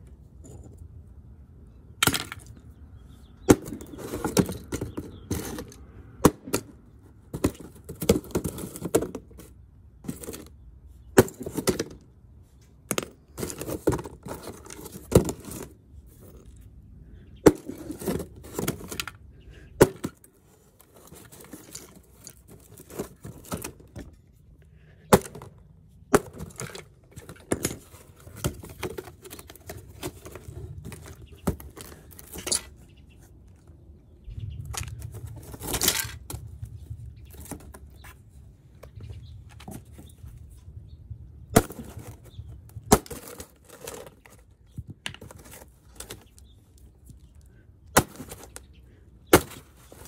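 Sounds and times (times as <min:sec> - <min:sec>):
box rustling: 0:13.0 - 0:16.6, 0:17.4 - 0:19.2, 0:19.8 - 0:24.2, 0:25.1 - 0:32.8.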